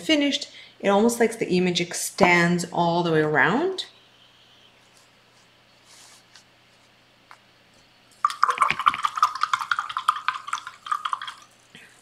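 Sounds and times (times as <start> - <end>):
paintbrush rattling in water cup: 8.2 - 11.6.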